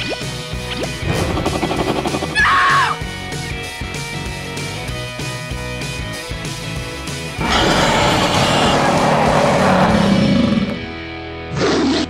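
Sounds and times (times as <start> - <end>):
background music: 0.0 - 12.0
dinosaur roar: 7.4 - 10.9.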